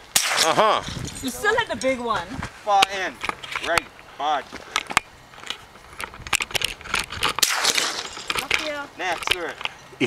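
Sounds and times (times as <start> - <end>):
sharp crack: 0.0 - 0.9, 6.3 - 9.7
camera handling crunching and clicks: 3.2 - 3.8, 4.6 - 9.8.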